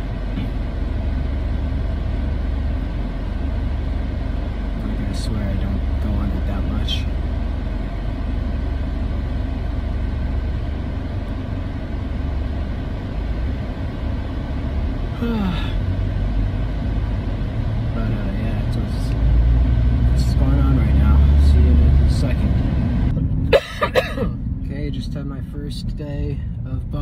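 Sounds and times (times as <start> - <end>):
low rumble inside car: 0.0 - 27.0
person yawning: 15.2 - 15.8.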